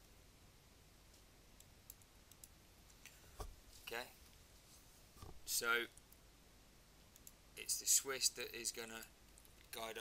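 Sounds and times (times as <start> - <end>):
faint clicks: 1.1 - 3.2, 7.1 - 7.4
man speaking: 9.8 - 10.0.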